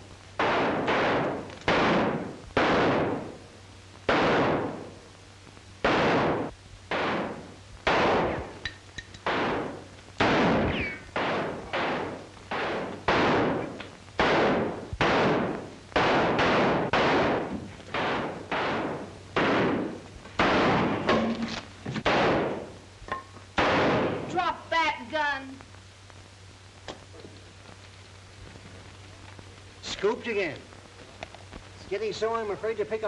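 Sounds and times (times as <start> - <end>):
gunshots with reverberant tail: 0.4 - 3.4, 4.1 - 5.0, 5.8 - 8.6, 9.2 - 22.7, 23.6 - 24.3.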